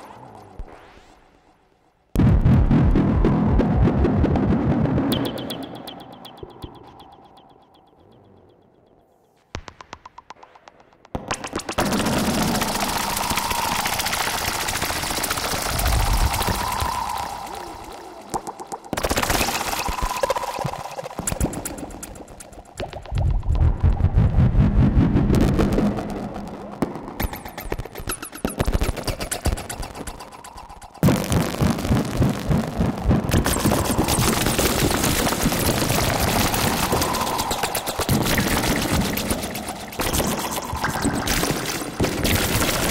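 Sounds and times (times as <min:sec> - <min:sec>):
synthesizer rapid clicks: 0:04.4 - 0:42.9
wavering synthesizer tone: 0:05.1 - 0:09.4.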